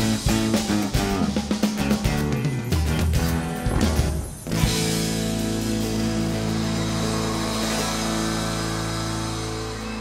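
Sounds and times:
live band holding a chord: 0:03.3 - 0:10.0.

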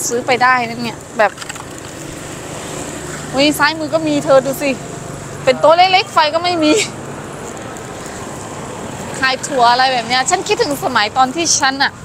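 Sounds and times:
tyre and road noise: 0:00.0 - 0:12.0
vehicle engine running: 0:00.0 - 0:12.0.

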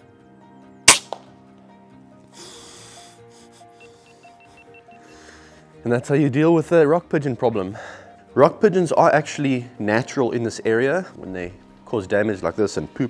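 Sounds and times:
background music: 0:00.0 - 0:13.0
air rifle shot crack: 0:00.9 - 0:01.3.

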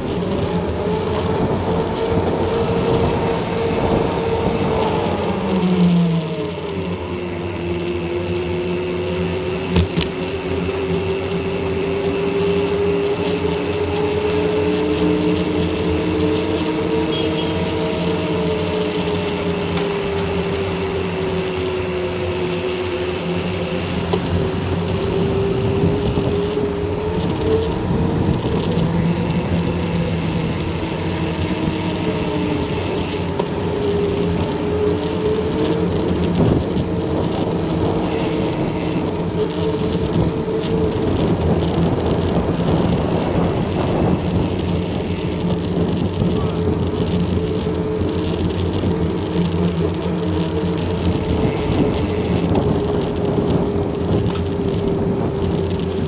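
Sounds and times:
bike tyres humming on asphalt: 0:00.0 - 0:56.0
wind rushing on camera: 0:00.0 - 0:56.0.

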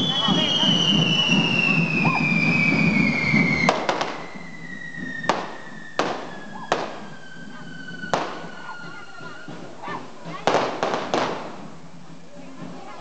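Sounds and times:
firecracker bangs: 0:00.0 - 0:09.6, 0:10.2 - 0:11.8
firework whistle falling in pitch: 0:00.0 - 0:09.7.

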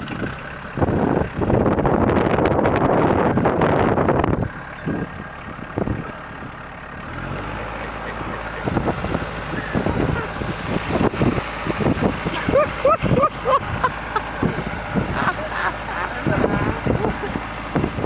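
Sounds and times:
tractor diesel engine running: 0:00.0 - 0:18.0.

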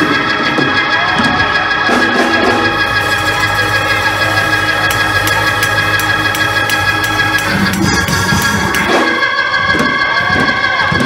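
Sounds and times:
organ chord: 0:01.6 - 0:09.6
low bass note: 0:02.6 - 0:09.1.

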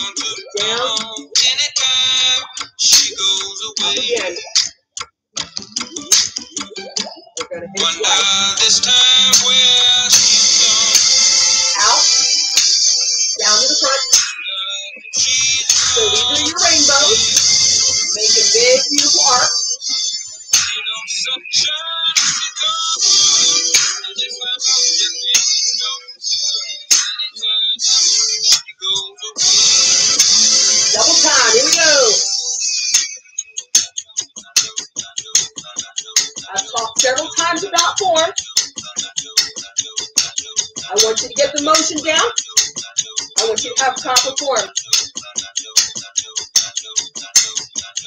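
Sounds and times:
workout music with singer: 0:00.0 - 0:48.0.

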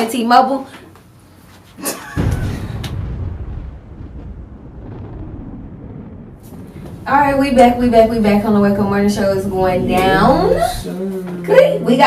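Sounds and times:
deep boom with rumble: 0:02.1 - 0:10.9.

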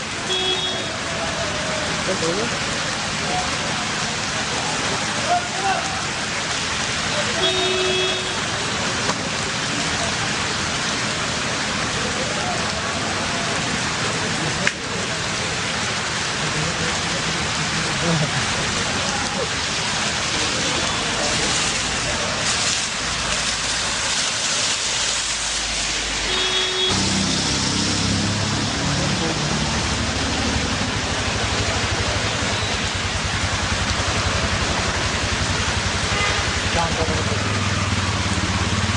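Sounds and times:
heavy rain on asphalt: 0:00.0 - 0:38.9.

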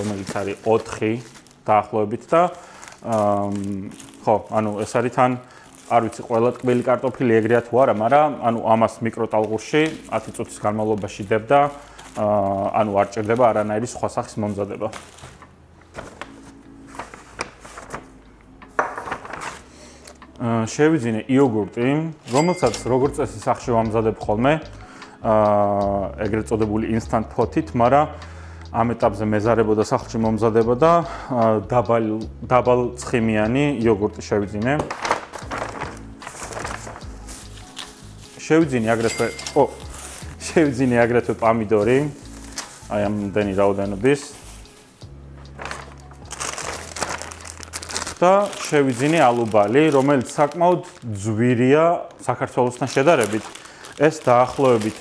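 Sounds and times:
paper bag rustling: 0:00.0 - 0:18.2, 0:18.8 - 0:20.1, 0:34.7 - 0:55.0
plastic bag crinkling: 0:00.0 - 0:18.2, 0:34.8 - 0:55.0.

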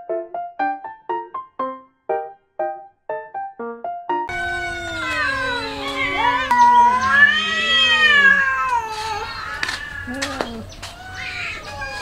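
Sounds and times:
cats meowing: 0:04.3 - 0:12.0.

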